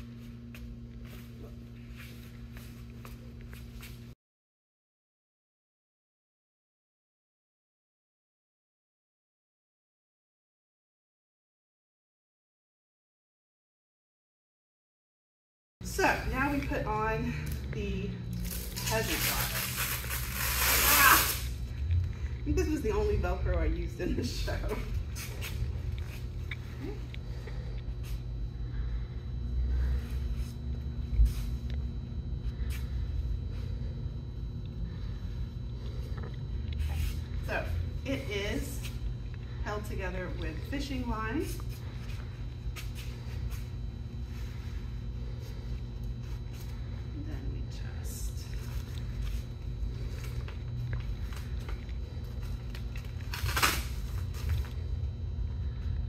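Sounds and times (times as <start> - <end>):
low room rumble: 0.0 - 4.2, 15.8 - 56.0
steady low hum: 0.0 - 4.2, 15.8 - 56.0.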